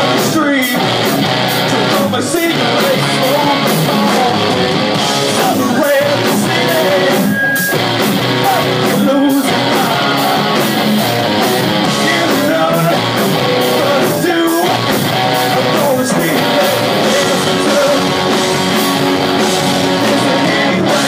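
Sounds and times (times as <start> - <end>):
drums with cymbal hits: 0.0 - 21.0
electric guitars: 0.0 - 21.0
person singing: 1.6 - 10.9, 11.8 - 18.8, 19.7 - 21.0.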